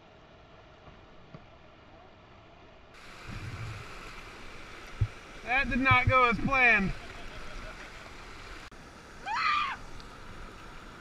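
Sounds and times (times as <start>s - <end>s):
rushing whitewater: 1.6s - 11.0s
low thumps: 3.2s - 3.9s, 4.9s - 6.6s.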